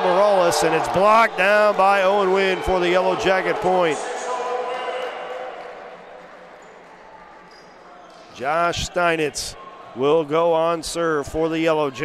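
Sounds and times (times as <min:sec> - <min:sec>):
crowd voices in a gymnasium: 0:00.0 - 0:12.0
low hall murmur: 0:00.0 - 0:12.0.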